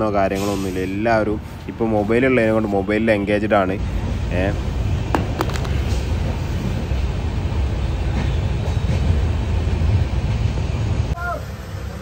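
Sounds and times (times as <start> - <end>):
train coach rumble and rattle: 0.0 - 12.0.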